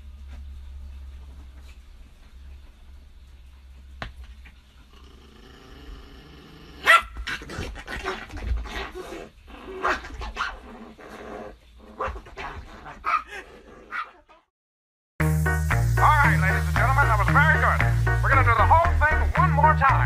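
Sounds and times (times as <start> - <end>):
small dog growling: 4.9 - 14.3
small dog yapping: 6.8 - 10.7, 12.0 - 14.4.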